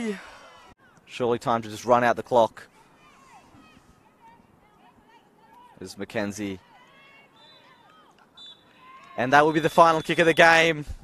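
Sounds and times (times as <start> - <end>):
players calling: 1.8 - 10.8.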